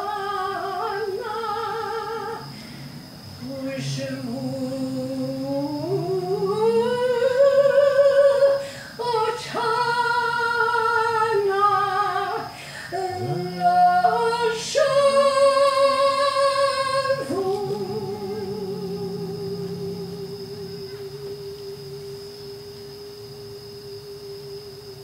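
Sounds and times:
woman singing unaccompanied: 0:00.0 - 0:25.0.

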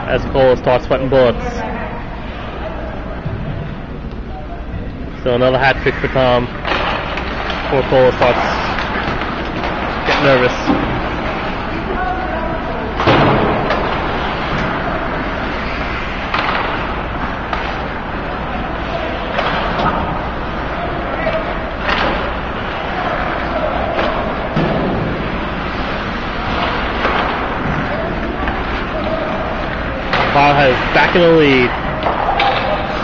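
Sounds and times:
puck and players hitting boards: 0:05.9 - 0:33.0.

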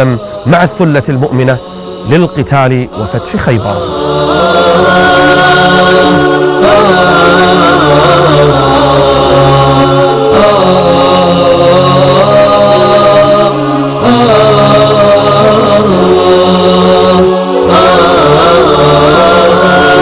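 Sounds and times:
voices chanting in held notes: 0:00.0 - 0:20.0.

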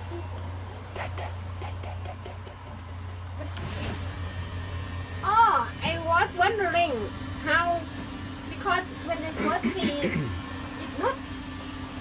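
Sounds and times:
electric motor humming: 0:01.3 - 0:12.0.

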